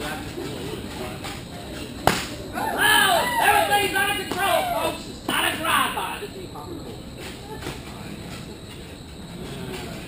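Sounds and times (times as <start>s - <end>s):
sharp crack: 2.0s - 2.4s.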